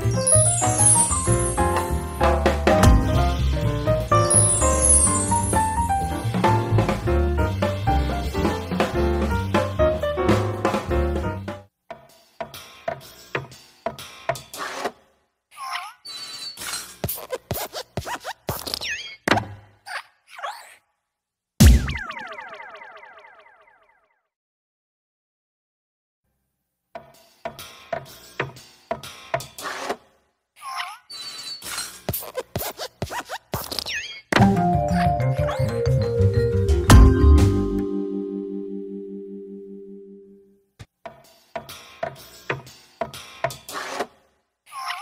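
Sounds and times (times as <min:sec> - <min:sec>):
jingle with bass line: 0:00.0 - 0:08.1, 0:34.4 - 0:40.5
cartoon sliding chirps and clicks: 0:00.1 - 0:01.9, 0:04.1 - 0:05.9, 0:15.7 - 0:19.3, 0:30.7 - 0:35.8.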